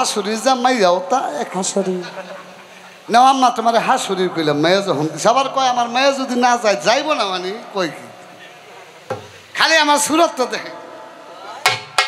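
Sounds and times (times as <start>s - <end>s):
man speaking over loudspeakers: 0.0s - 2.4s, 3.1s - 11.1s.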